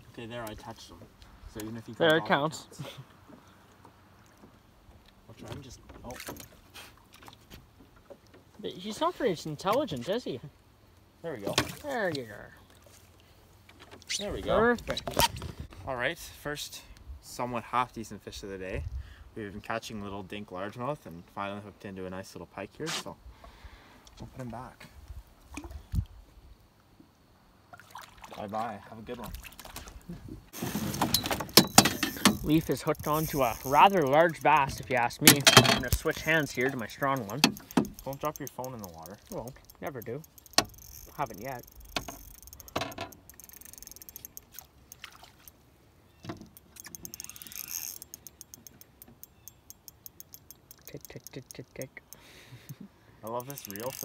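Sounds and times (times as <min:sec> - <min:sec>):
light water splashing: 0:11.0 - 0:14.1, 0:25.4 - 0:26.1, 0:27.7 - 0:30.2, 0:31.9 - 0:52.2
fishing reel clicking: 0:32.0 - 0:45.6, 0:46.4 - 0:52.3, 0:53.2 - 0:54.0.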